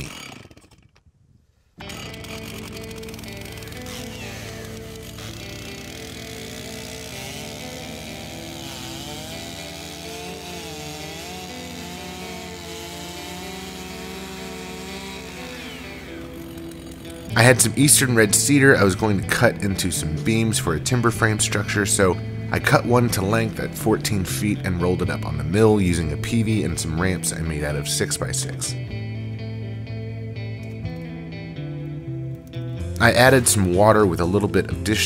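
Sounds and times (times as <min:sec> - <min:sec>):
chainsaw cutting through log: 0:00.0 - 0:01.2, 0:01.8 - 0:29.2
background music: 0:01.8 - 0:35.0.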